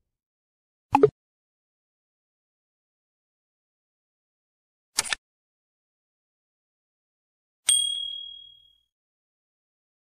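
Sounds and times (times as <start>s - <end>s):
bell-like ding: 7.7s - 8.9s.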